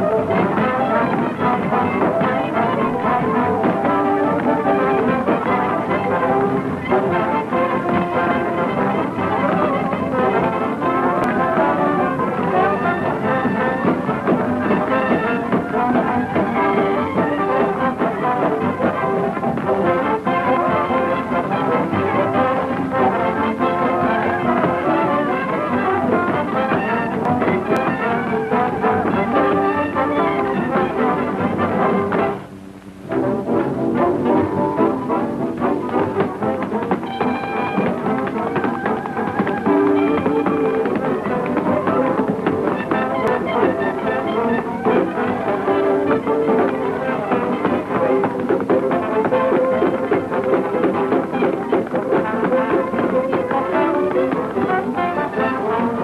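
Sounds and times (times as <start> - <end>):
dance orchestra with brass: 0.0 - 56.0.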